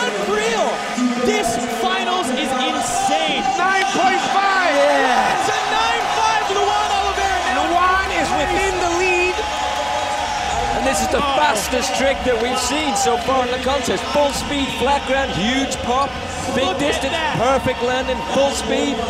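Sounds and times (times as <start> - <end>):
crowd cheering and whooping: 0.0 - 19.0.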